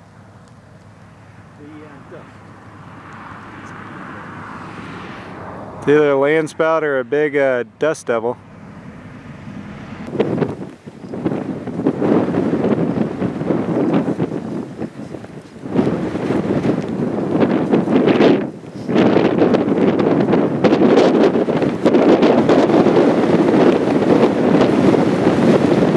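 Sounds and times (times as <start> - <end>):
wind gusting over microphone: 0.0 - 25.9.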